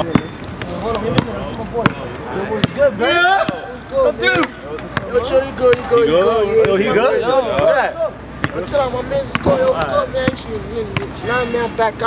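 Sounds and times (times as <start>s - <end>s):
basketball bouncing on asphalt: 0.0s - 3.7s, 4.8s - 6.9s, 7.5s - 11.2s
men greeting each other: 0.0s - 12.0s.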